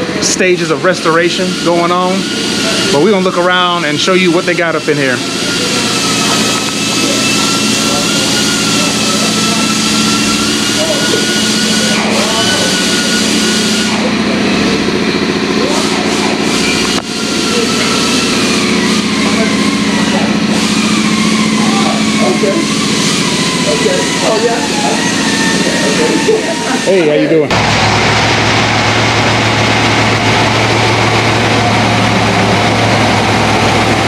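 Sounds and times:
mechanical hum: 0:00.0 - 0:34.0
thin whine drifting in pitch: 0:00.0 - 0:34.0.

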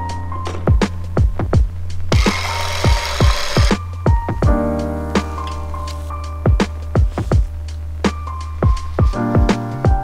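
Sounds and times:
music with deep kick-drum beat: 0:00.0 - 0:10.0
electric hand mixer running: 0:02.1 - 0:03.8.

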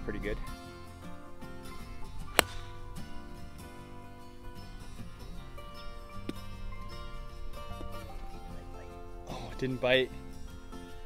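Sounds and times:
acoustic guitar music: 0:00.0 - 0:11.0
golf club striking ball: 0:01.9 - 0:08.2.

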